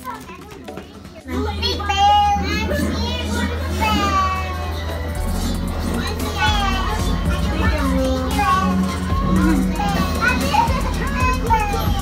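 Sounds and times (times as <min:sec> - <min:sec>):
girls talking and calling out: 0:00.0 - 0:12.0
music playing: 0:00.0 - 0:12.0.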